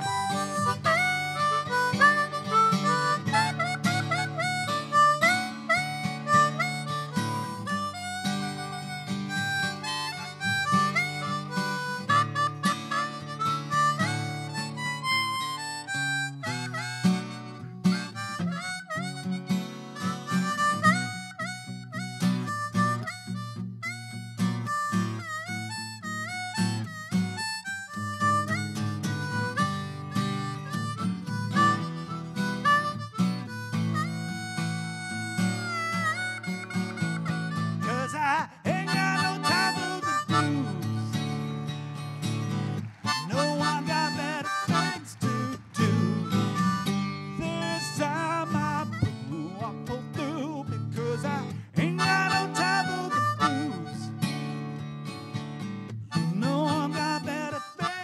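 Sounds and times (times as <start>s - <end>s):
blues harmonica solo: 0.0s - 58.0s
low guitar accompaniment: 0.0s - 58.0s.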